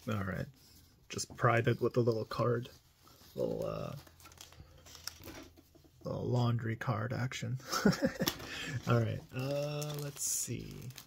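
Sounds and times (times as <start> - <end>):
plastic sleeve crinkling: 1.8 - 5.7, 8.2 - 11.0.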